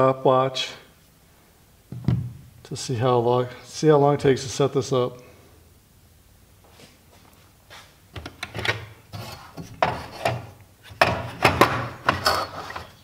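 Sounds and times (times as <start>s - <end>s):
saw plate knocking and scraping: 9.1s - 13.0s.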